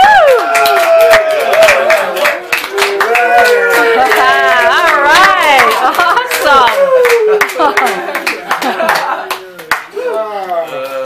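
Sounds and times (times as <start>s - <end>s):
audience clapping: 0.0s - 10.2s
voices calling out and talking: 0.4s - 11.0s.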